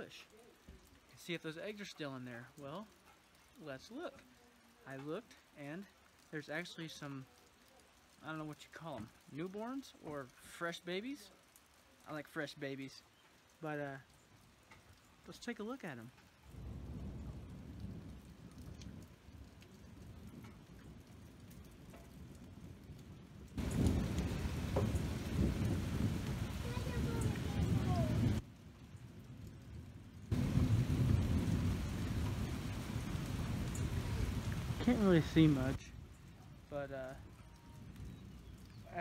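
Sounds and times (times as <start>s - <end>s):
leaves rustling against microphone: 0.0s - 29.1s, 29.7s - 39.0s.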